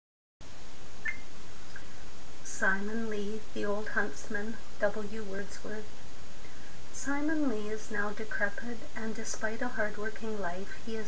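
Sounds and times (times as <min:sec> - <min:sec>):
background hiss: 0:00.4 - 0:11.0.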